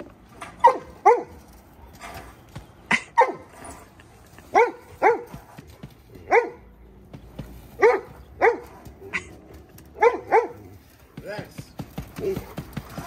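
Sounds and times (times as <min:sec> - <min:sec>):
dog barking: 0:00.6 - 0:01.4, 0:03.2 - 0:03.4, 0:04.5 - 0:05.3, 0:06.3 - 0:06.6, 0:07.8 - 0:08.8, 0:10.0 - 0:10.7.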